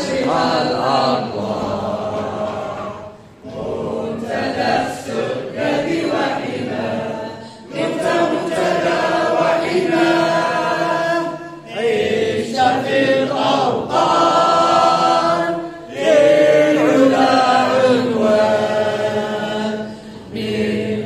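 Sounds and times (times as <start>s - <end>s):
crowd of men singing anthem: 0.0s - 21.0s.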